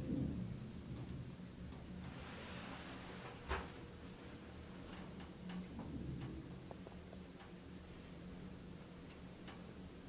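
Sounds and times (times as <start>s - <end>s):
light ticks: 4.9s - 7.6s, 9.0s - 9.7s.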